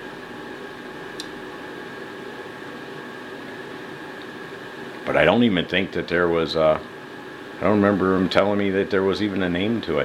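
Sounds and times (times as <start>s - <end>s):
background hum and hiss: 0.0s - 10.0s.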